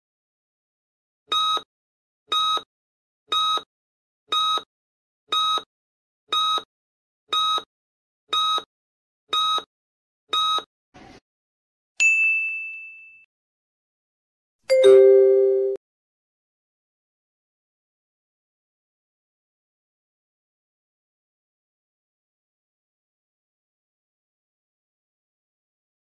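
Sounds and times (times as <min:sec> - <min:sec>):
bright ding: 0:12.0 - 0:13.3, 0:14.7 - 0:15.8.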